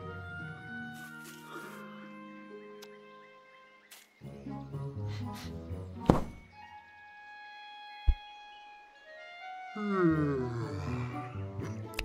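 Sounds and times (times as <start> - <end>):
soft orchestral score: 0.0 - 12.0
deep thump: 6.0 - 6.4
sharp thud: 6.0 - 6.4.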